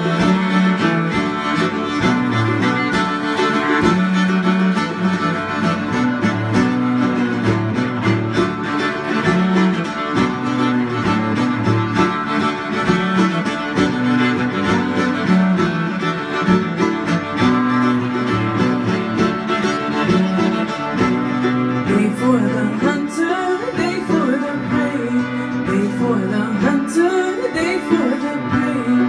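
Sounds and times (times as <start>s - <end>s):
banjo: 0.0s - 29.0s
bowed cello: 0.0s - 29.0s
viola: 0.0s - 29.0s.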